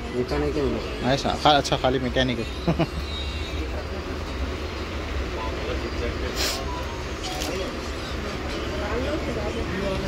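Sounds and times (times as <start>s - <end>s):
brief hiss: 6.3s - 6.8s.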